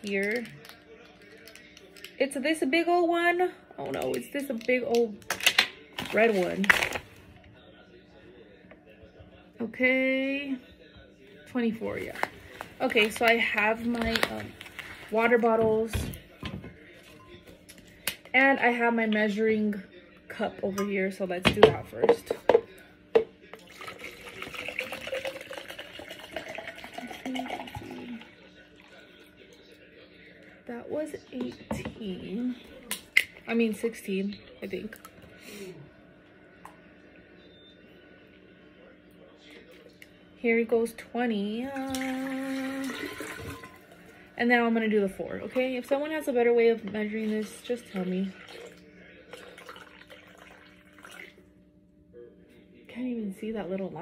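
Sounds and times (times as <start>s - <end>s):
water pouring into cup: 23.5s - 29.6s, 41.8s - 44.2s, 47.2s - 51.5s.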